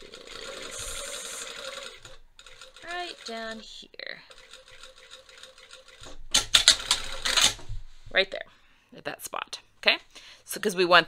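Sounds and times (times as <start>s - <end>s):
sewing machine motor hum: 0.0s - 7.6s.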